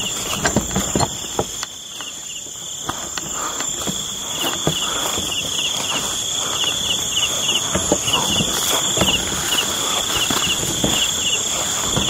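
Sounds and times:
crickets trilling: 0.0s - 12.0s
footsteps brushing through weeds: 1.8s - 12.0s.

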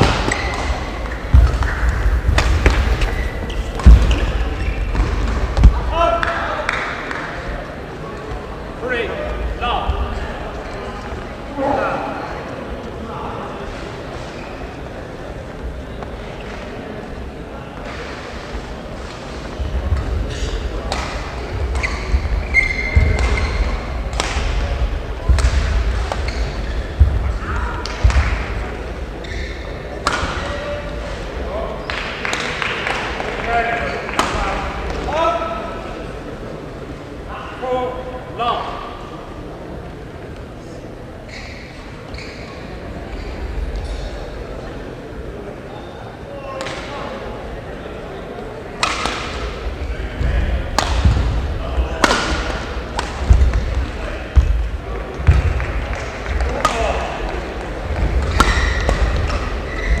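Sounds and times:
racket hitting shuttlecock: 0.0s - 4.3s, 22.7s - 24.6s, 25.3s - 26.4s, 48.8s - 49.5s, 50.7s - 51.4s, 52.0s - 59.8s
footfalls on court floor: 0.0s - 5.9s, 53.0s - 60.0s.

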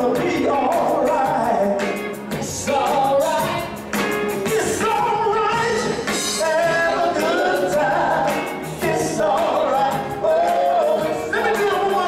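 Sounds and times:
live band with sung vocals: 0.0s - 12.0s
steady drum beat: 0.0s - 12.0s.

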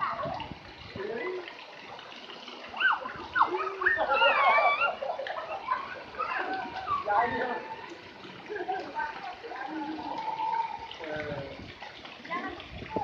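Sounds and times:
splashing pool water: 0.0s - 13.0s
children calling out: 2.7s - 8.1s, 9.3s - 11.0s.

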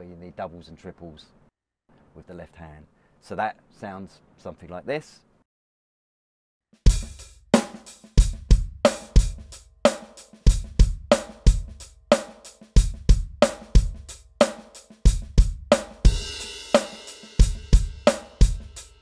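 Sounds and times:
electronic drum kit groove: 6.8s - 19.0s.

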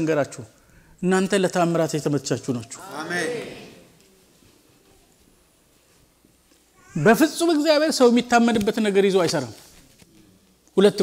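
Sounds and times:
man speaking: 0.0s - 3.8s, 6.9s - 9.6s.

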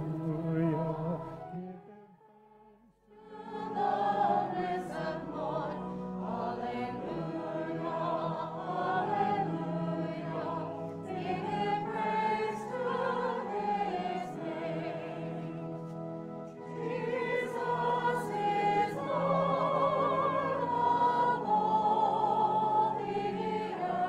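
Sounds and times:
sustained organ accompaniment: 0.0s - 24.0s
choir and congregation singing hymn: 3.1s - 24.0s.

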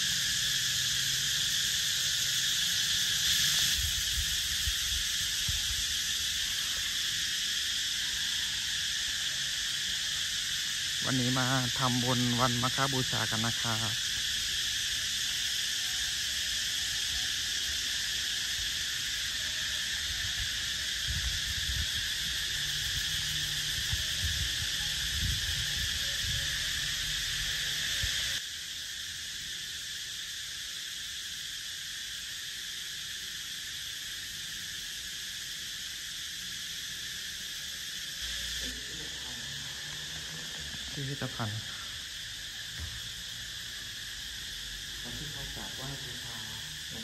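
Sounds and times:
high-pitched insect drone: 0.0s - 47.0s.

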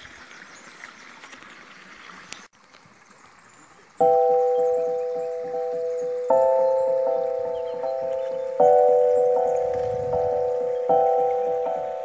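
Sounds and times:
music with bell-like chord: 4.0s - 12.0s.

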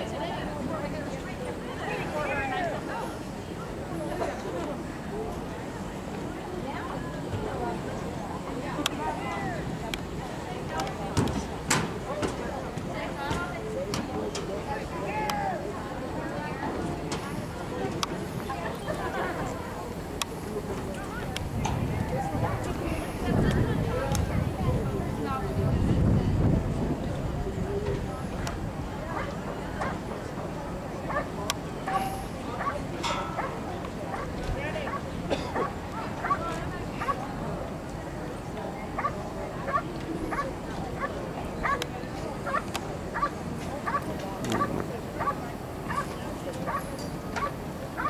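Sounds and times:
indistinct background voices: 0.0s - 48.0s.

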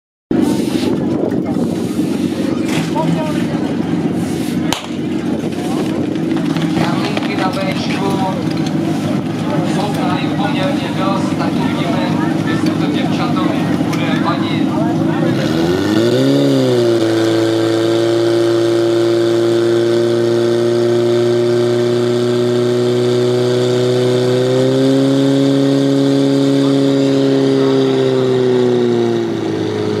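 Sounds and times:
pump petrol engine running: 0.3s - 30.0s.

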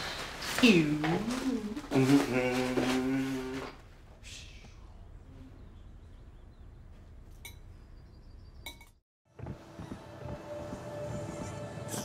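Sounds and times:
person holding a vocal note: 1.3s - 3.7s.

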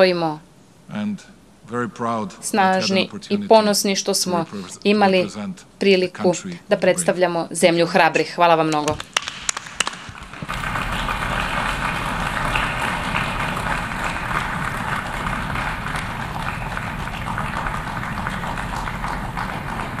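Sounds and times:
audience applause: 9.1s - 20.0s.

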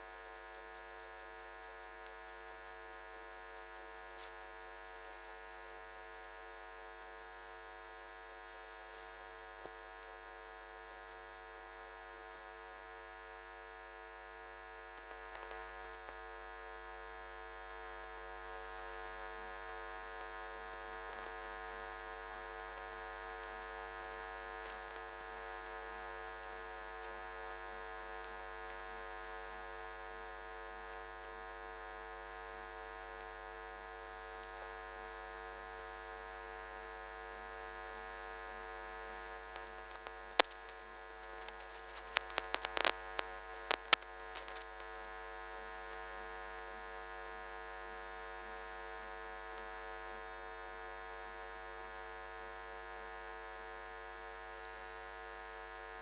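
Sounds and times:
steady electrical hum: 0.0s - 56.0s
sharp clicks: 39.5s - 40.7s, 41.4s - 44.6s.

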